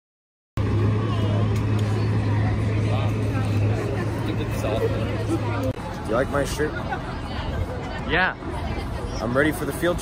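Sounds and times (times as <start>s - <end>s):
bus engine idling: 0.6s - 10.0s
people chattering: 0.6s - 10.0s.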